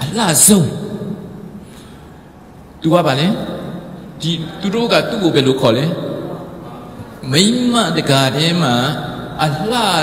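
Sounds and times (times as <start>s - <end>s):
man speaking through microphone: 0.0s - 1.4s, 2.8s - 10.0s.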